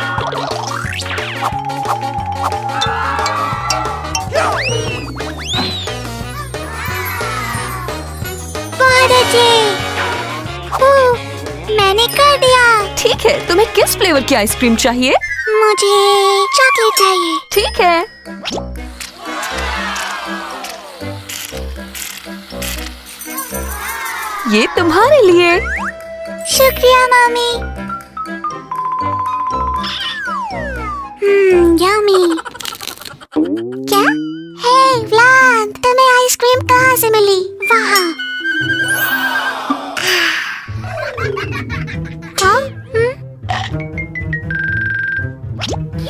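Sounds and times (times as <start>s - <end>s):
upbeat background music: 0.0s - 15.9s, 17.5s - 32.0s, 33.9s - 46.0s
crowd cheering: 2.5s - 8.0s, 19.1s - 21.3s, 23.4s - 25.2s, 38.4s - 40.7s.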